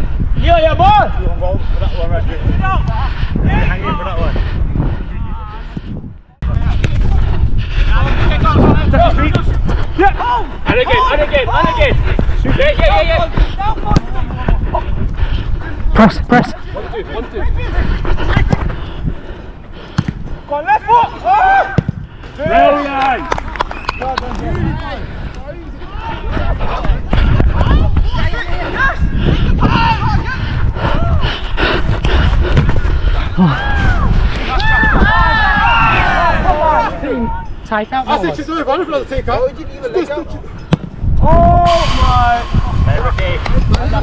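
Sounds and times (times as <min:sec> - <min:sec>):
wind rumble on microphone: 0:00.0 - 0:20.5, 0:23.3 - 0:37.7, 0:39.0 - 0:44.0
footballers shouting: 0:08.0 - 0:14.9, 0:20.5 - 0:23.4, 0:25.5 - 0:31.2, 0:33.3 - 0:39.3
players shouting: 0:10.0 - 0:12.0, 0:33.4 - 0:37.5
running footsteps: 0:23.3 - 0:35.7.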